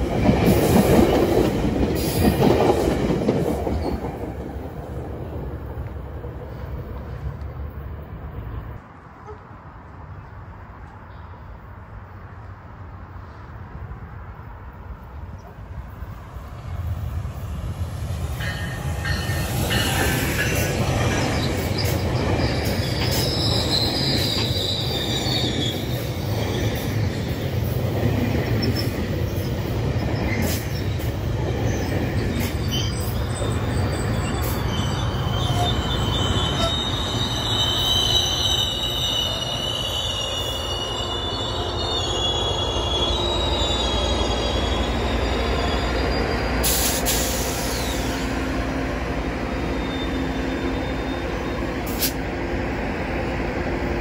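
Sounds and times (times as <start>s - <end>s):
train wheels rumbling on rail: 0.0s - 10.1s, 11.9s - 54.0s
high-pitched wheel squeal: 19.2s - 26.7s, 31.7s - 48.3s, 49.7s - 51.6s.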